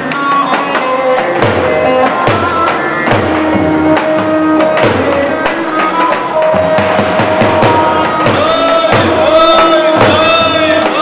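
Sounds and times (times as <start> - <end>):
davul drum strikes: 0.0 - 11.0.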